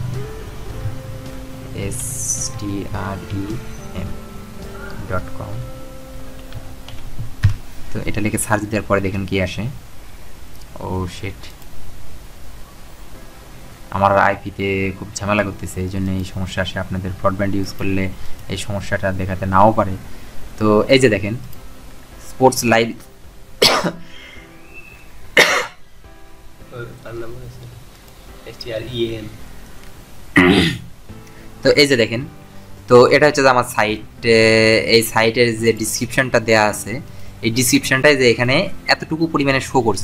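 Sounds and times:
person coughing: 0:23.6 - 0:24.1, 0:25.4 - 0:25.8, 0:30.4 - 0:30.9.

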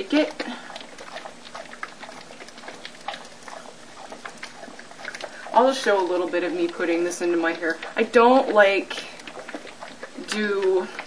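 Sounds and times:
dog lapping water: 0:00.0 - 0:11.0.

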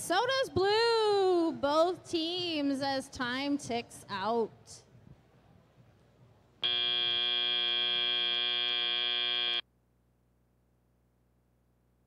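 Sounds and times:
loud buzzer blast: 0:06.6 - 0:09.6.

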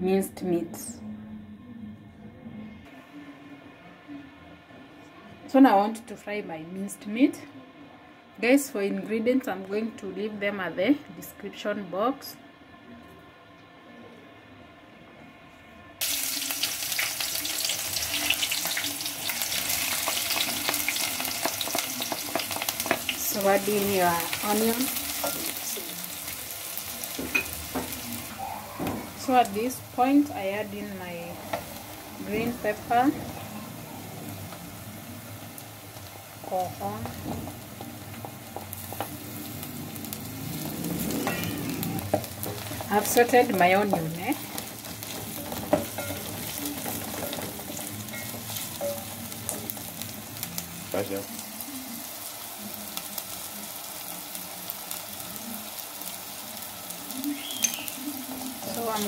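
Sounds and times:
onion sizzling in hot oil: 0:16.0 - 0:59.0
wooden spoon stirring: 0:40.6 - 0:49.9.

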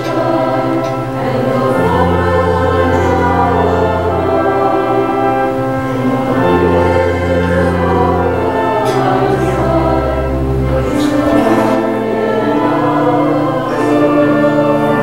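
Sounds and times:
congregation singing a hymn: 0:00.0 - 0:15.0
deep sustained bass notes: 0:00.0 - 0:15.0.

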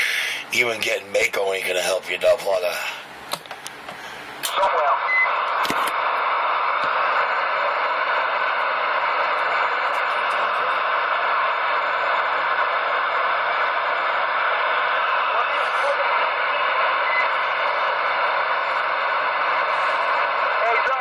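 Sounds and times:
radio static hiss: 0:00.0 - 0:21.0.

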